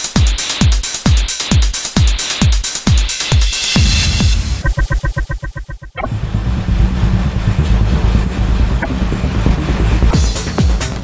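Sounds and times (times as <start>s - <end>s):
low rumbling electronic noise: 3.7s - 10.3s.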